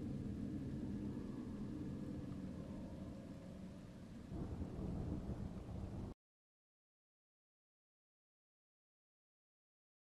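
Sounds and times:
faint low rumbling: 0.0s - 6.2s.

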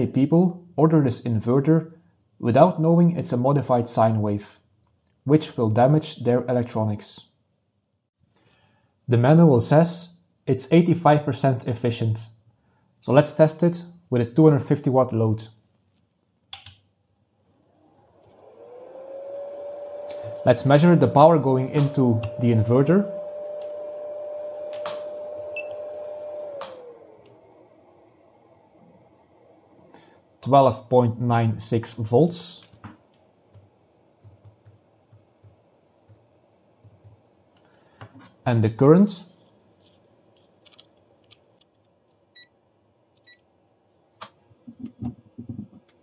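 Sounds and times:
fan heater whine: 17.5s - 33.2s
clamp meter high beeps: 25.5s - 25.8s.

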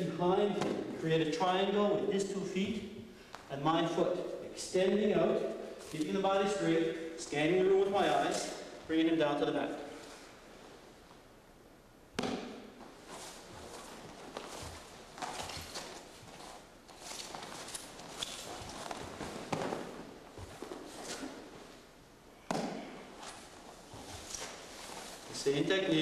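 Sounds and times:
hands and feet slapping mat: 0.4s - 1.0s, 12.2s - 21.8s, 22.4s - 25.4s
uniforms rustling: 12.6s - 22.0s, 22.7s - 26.0s
body thudding onto mat: 18.6s - 21.4s.

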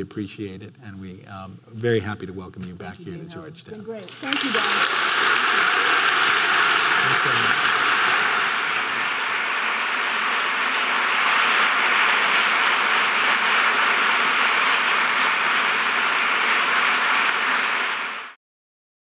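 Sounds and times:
audience applauding: 4.0s - 18.4s.

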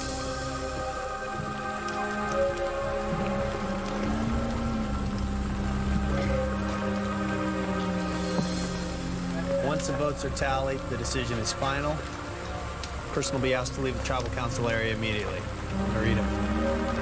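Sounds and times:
steady crackling hiss: 0.0s - 17.0s
sustained drone music: 0.0s - 17.0s.

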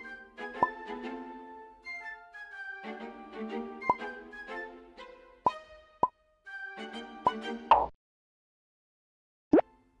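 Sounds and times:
light background music: 0.0s - 7.9s
cartoon plop sound effects: 7.3s - 7.9s.

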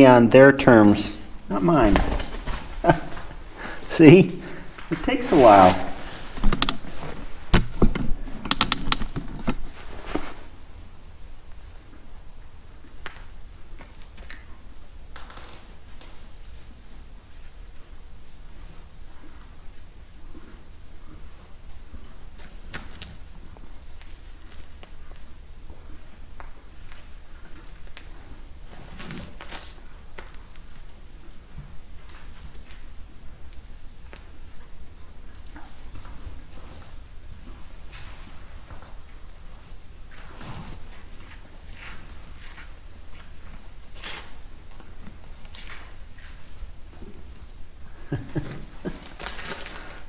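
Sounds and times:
steady low hum: 0.0s - 50.0s
calf hooves rustling on straw: 1.6s - 7.4s, 35.3s - 46.7s.

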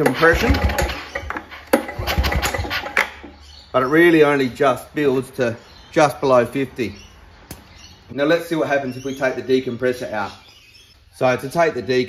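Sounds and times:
lawn mower engine turned over by pull-start: 0.0s - 3.4s.

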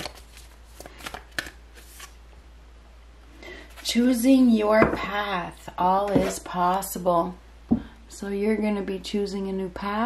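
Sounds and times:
cards being shuffled: 0.0s - 2.2s.

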